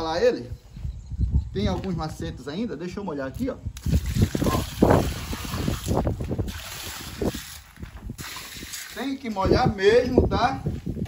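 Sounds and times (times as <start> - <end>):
water splashing onto concrete: 3.8 - 9.4.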